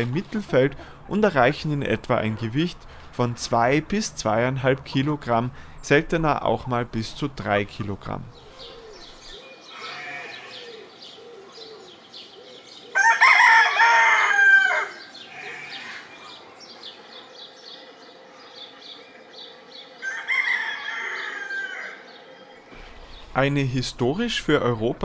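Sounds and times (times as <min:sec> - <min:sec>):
small birds chirping: 0:04.0 - 0:13.1, 0:14.8 - 0:25.0
rooster crowing: 0:12.9 - 0:16.1, 0:20.0 - 0:22.1.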